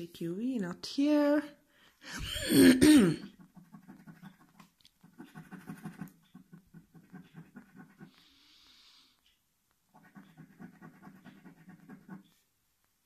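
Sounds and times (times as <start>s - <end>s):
person clearing throat: 2.2s - 3.4s.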